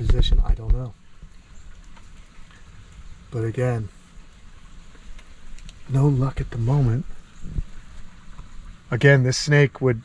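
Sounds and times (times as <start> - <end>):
steady background hiss: 0.0 - 10.0
faint click: 4.9 - 5.8.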